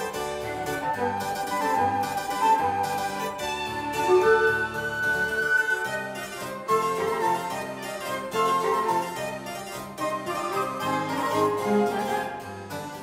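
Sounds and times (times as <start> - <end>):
harpsichord playing: 0.0 - 13.0.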